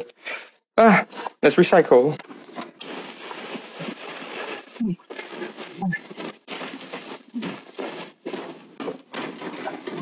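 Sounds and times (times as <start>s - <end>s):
plastic bag rustling and crinkling: 2.3s - 10.0s.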